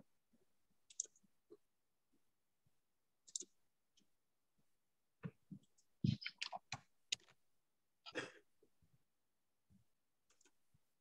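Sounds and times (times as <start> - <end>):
computer mouse clicks: 0.9 - 1.2, 3.2 - 3.5, 10.3 - 10.6.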